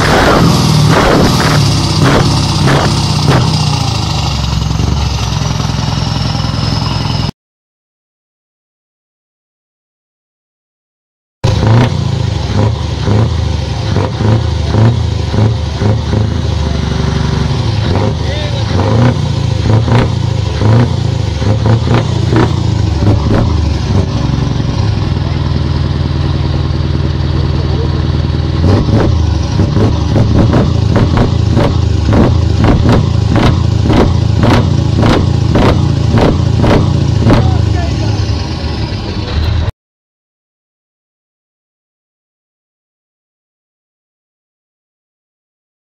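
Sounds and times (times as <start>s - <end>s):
truck diesel engine revving: 0.0s - 7.3s, 11.4s - 39.7s.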